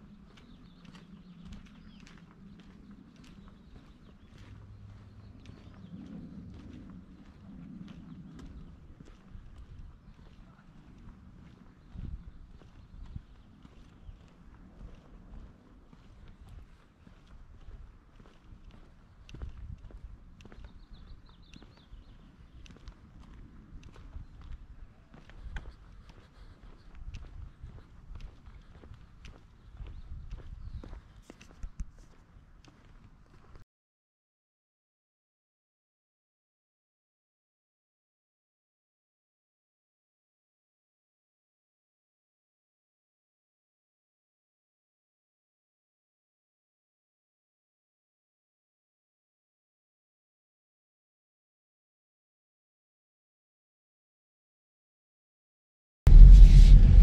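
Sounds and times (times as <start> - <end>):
footsteps on concrete: 22.6 - 33.6
low hum: 56.1 - 57.0.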